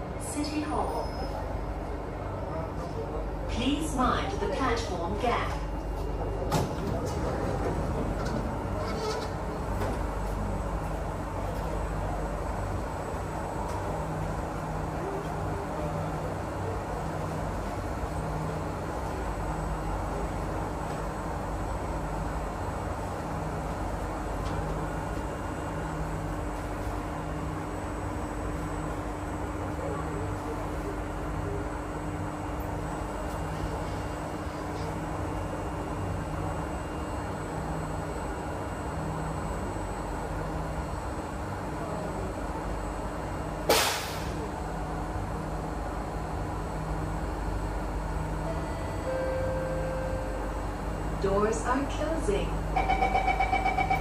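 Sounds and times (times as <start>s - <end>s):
train car hum: 0.0s - 54.0s.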